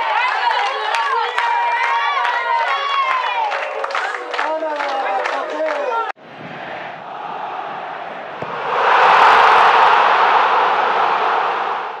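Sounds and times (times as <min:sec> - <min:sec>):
loud rushing noise: 0:08.3 - 0:12.0.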